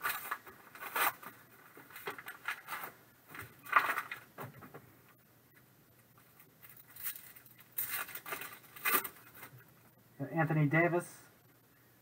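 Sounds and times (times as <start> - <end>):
foil pack crinkling: 0.0 - 3.0, 6.6 - 9.5.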